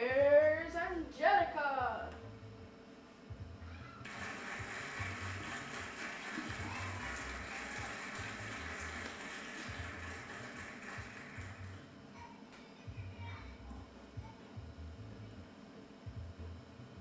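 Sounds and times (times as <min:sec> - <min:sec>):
steady hiss: 0:04.1 - 0:11.8.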